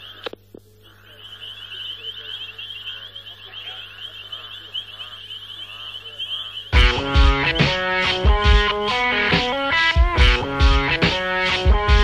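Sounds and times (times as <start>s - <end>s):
high chirping animal calls: 0.0s - 8.0s
lower wavering calls: 0.0s - 8.0s.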